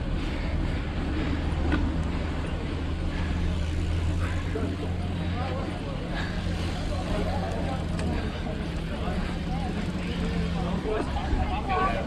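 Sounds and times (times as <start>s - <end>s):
bystanders talking: 0.0s - 12.0s.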